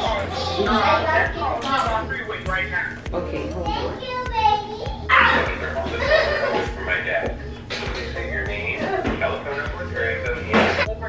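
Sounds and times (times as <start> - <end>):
children talking and shouting: 0.0 - 11.0.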